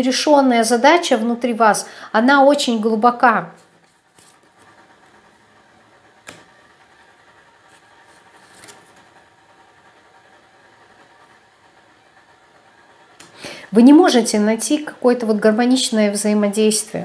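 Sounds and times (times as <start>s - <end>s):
faint room hum: 0.0s - 17.0s
soft card swish: 3.6s - 4.8s, 6.2s - 6.5s, 7.6s - 9.0s.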